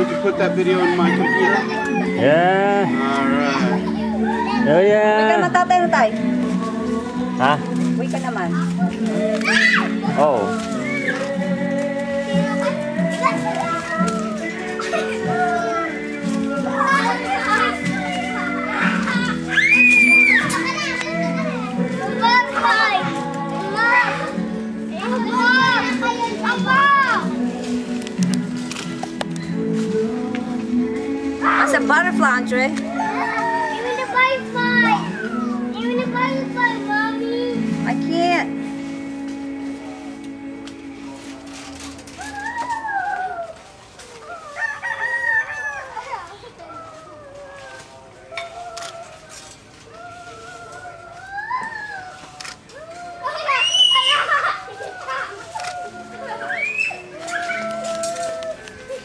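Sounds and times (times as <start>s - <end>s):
background music: 0.0s - 43.4s
children calling and shouting: 0.0s - 59.0s
rooster crowing: 0.8s - 2.2s, 44.2s - 46.2s
child squealing: 9.4s - 11.2s, 18.4s - 21.6s, 32.9s - 35.6s, 42.2s - 43.6s, 49.9s - 59.0s.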